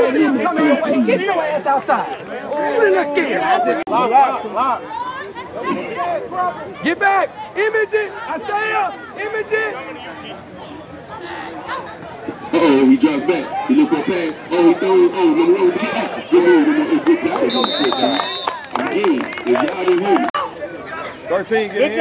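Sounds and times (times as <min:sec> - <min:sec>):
voices talking and calling out: 0:00.0 - 0:22.0.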